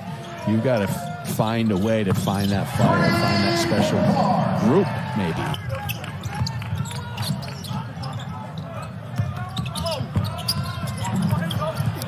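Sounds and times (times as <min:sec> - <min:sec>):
arena crowd noise: 0:00.0 - 0:12.0
sneakers squeaking on court: 0:05.5 - 0:12.0.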